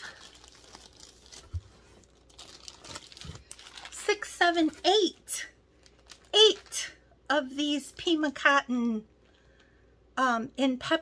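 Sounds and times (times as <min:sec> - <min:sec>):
plastic wrapping crinkling: 0:00.0 - 0:07.0.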